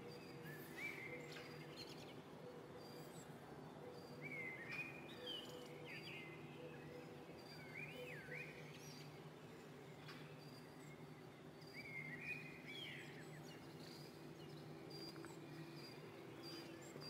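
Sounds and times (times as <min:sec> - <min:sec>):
faint low hum: 0:00.0 - 0:17.0
small birds chirping: 0:00.0 - 0:17.0.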